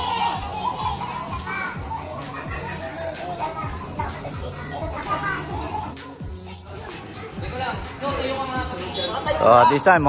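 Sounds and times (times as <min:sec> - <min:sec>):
background music: 0:00.0 - 0:10.0
voices talking and calling out: 0:00.0 - 0:10.0.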